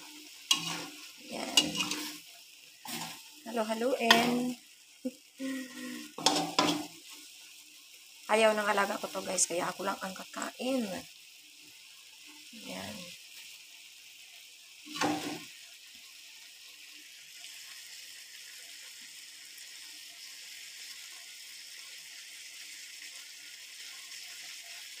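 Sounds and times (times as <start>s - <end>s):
food sizzling in a frying pan: 0.0s - 25.0s.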